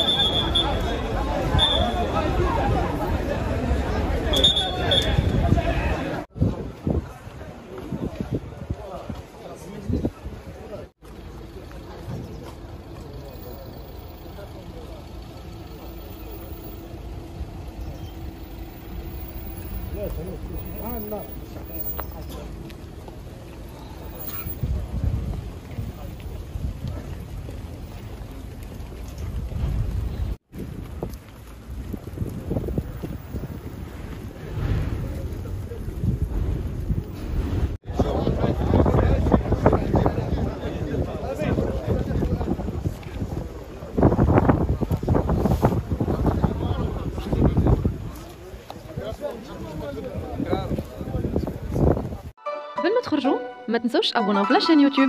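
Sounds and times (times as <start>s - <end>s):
murmur of crowd: 0.0s - 31.5s, 34.2s - 55.0s
wind rumbling on microphone: 4.8s - 10.9s, 21.4s - 52.3s.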